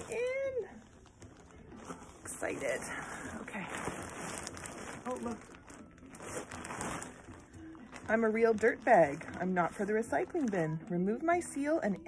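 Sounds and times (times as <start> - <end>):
plastic mailer bag crinkling: 0.0 - 10.8.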